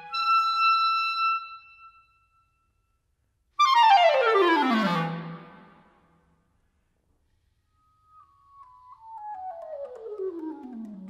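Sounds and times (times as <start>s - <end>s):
soft high woodwind notes descending: 7.6s - 11.0s.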